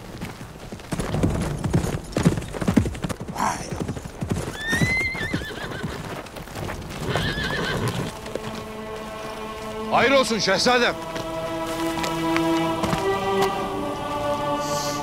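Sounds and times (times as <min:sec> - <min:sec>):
hooves galloping on earth: 0:00.0 - 0:15.0
horse whinnying: 0:03.3 - 0:06.2, 0:06.9 - 0:08.1.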